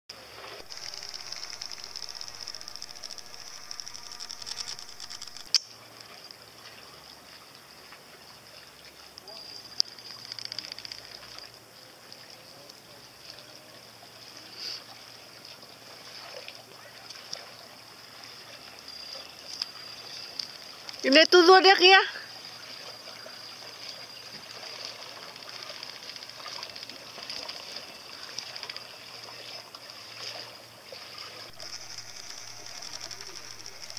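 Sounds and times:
outboard motor running: 0.2s - 5.5s, 31.3s - 33.9s
sharp clicks: 0.6s - 5.7s, 9.8s - 11.5s, 31.5s - 33.9s
water lapping: 13.2s - 31.6s.

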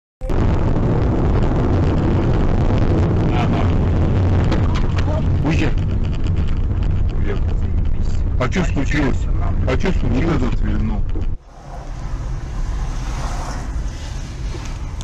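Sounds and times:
car engine and road rumble: 0.2s - 15.0s.

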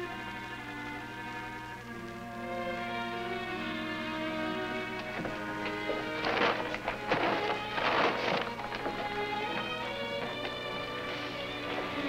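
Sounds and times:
background music: 0.0s - 12.0s
paper sack crinkling: 4.8s - 12.0s.

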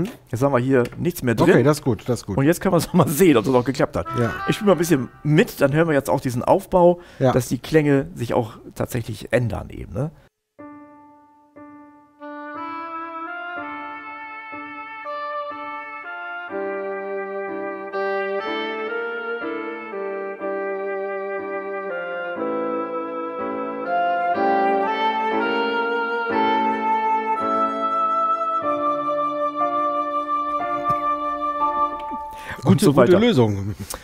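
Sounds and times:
saxophone voice: 3.1s - 5.8s, 32.4s - 33.5s
keyboard playing slow melody: 4.0s - 5.3s, 10.6s - 33.2s.

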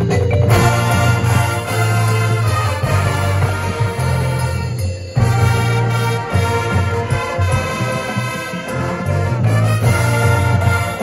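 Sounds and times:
keyboard percussion: 0.0s - 11.0s
marching band sustained chords: 0.0s - 11.0s.

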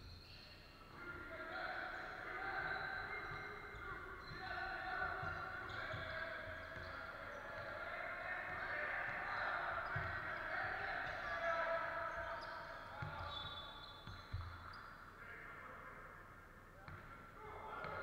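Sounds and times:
echoing player voices: 0.8s - 13.4s.

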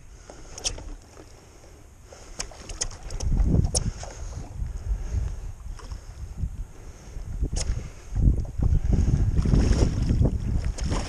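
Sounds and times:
wind gusting on microphone: 2.6s - 11.0s.

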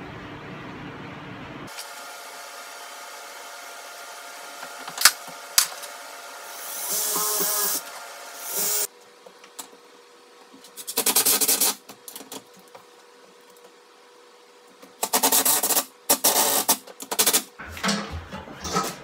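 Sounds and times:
drill driving screws into wood: 1.7s - 8.9s.

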